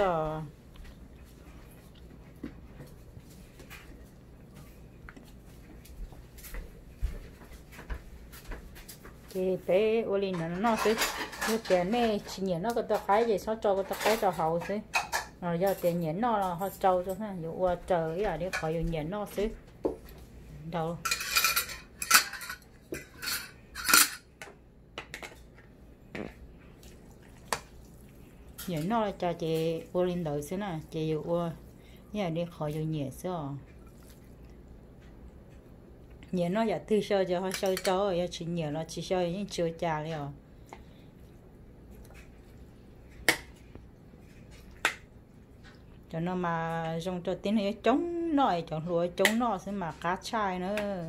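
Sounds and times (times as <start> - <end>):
cutlery scraping glass bowl: 10.4 - 13.2, 21.0 - 24.3.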